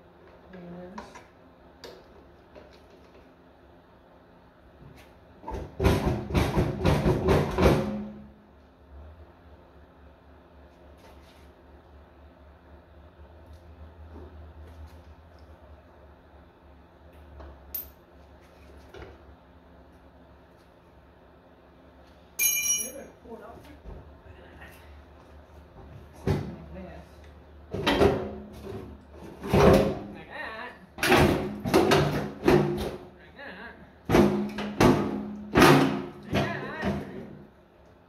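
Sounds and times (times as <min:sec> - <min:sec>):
loud knocks on engine: 0:05.5 - 0:08.2, 0:34.1 - 0:36.5.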